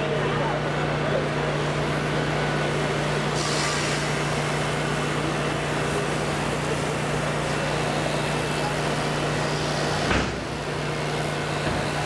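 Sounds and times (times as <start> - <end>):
pressure washer motor hum: 0.5 - 12.0
hiss of spray jet: 2.7 - 12.0.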